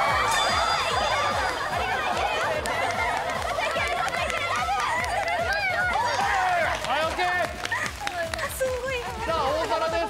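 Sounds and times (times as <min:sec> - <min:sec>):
women cheering and calling out: 0:00.0 - 0:06.9.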